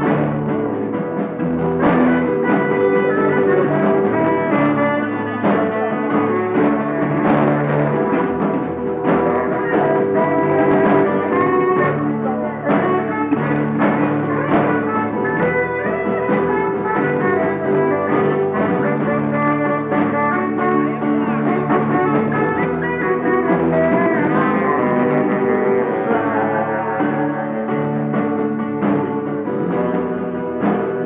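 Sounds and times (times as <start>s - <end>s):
electric guitar: 0.0s - 31.0s
saxophone melody: 0.0s - 31.0s.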